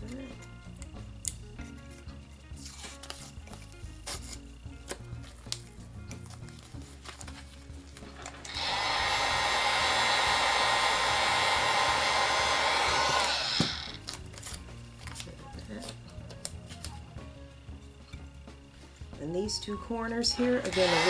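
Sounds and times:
heat gun blowing: 0:08.4 - 0:14.0, 0:20.4 - 0:21.0.

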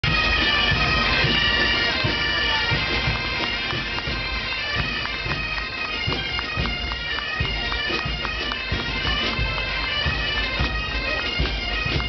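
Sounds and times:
bagpipes playing: 0:00.0 - 0:12.0
low drum beat: 0:00.0 - 0:12.0.

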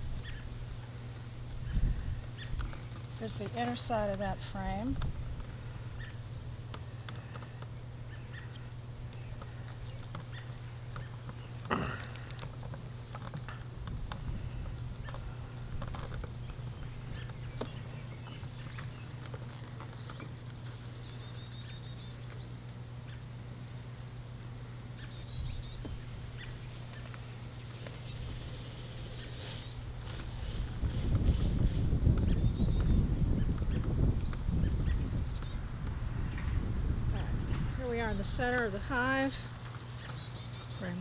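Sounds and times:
steady low hum: 0:00.0 - 0:41.0
songbird trilling: 0:01.6 - 0:11.7, 0:19.8 - 0:29.9, 0:31.9 - 0:36.8, 0:37.4 - 0:41.0.

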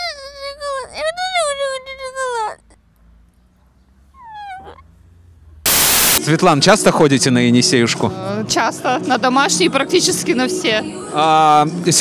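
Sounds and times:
boy crying: 0:00.0 - 0:02.8.

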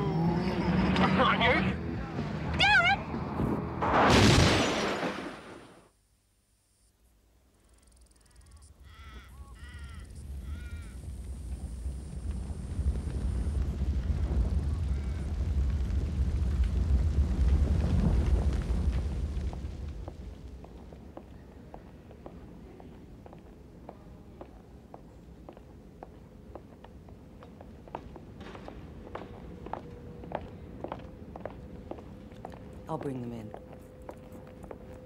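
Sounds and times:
car crash impact: 0:03.8 - 0:05.8
low rumbling drone: 0:09.6 - 0:20.7.

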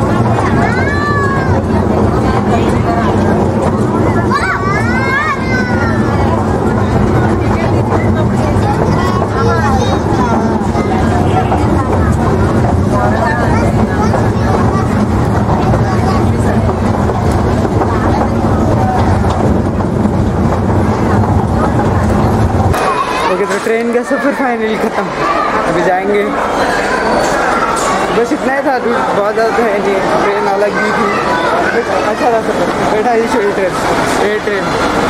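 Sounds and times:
small train rumbling: 0:00.0 - 0:35.0
voices chattering: 0:00.0 - 0:35.0.

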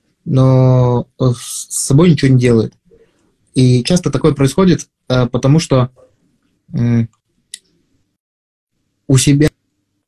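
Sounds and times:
man saying uh: 0:00.3 - 0:02.7, 0:03.6 - 0:06.0, 0:06.7 - 0:07.1.

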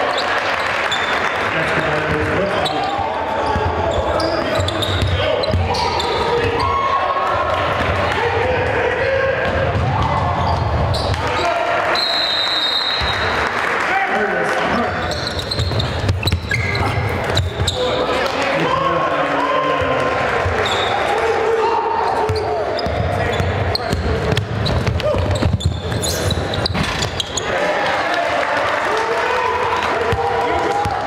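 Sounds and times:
crowd and player voices: 0:00.0 - 0:31.0.

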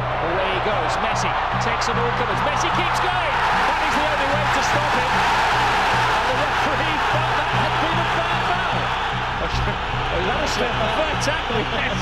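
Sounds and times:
background music with bass line: 0:00.0 - 0:12.0
stadium crowd roar: 0:00.0 - 0:12.0
male commentator speaking: 0:00.2 - 0:05.2, 0:06.2 - 0:08.8, 0:09.4 - 0:12.0.

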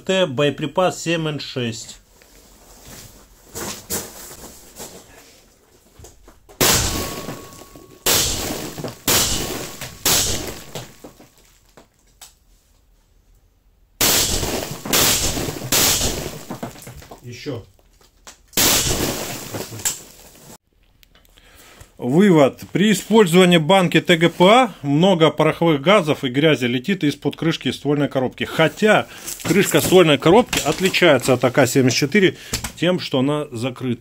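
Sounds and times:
rifle shots ringing in a room: 0:06.6 - 0:11.0, 0:14.0 - 0:16.5, 0:18.6 - 0:19.4.

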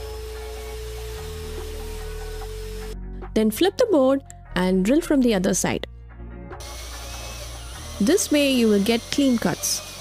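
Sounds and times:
cordless drill cutting wood: 0:00.0 - 0:03.0, 0:06.6 - 0:10.0.

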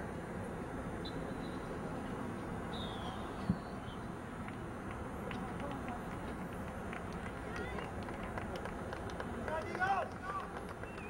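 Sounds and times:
distant indistinct voices: 0:02.7 - 0:11.0.

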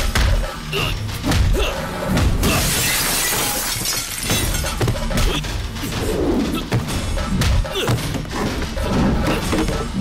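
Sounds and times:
background music: 0:00.0 - 0:10.0
glass shattering: 0:02.4 - 0:04.8.

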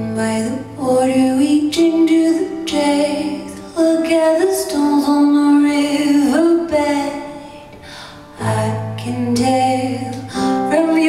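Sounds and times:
piano: 0:00.0 - 0:11.0
woman singing slow song: 0:00.0 - 0:11.0.

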